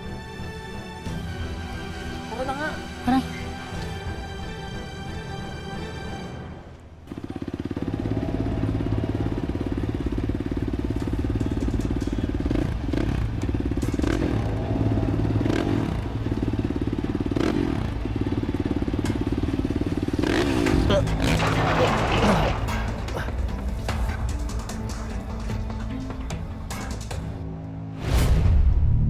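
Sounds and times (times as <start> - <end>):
motorcycle engine running: 7.0 - 27.4.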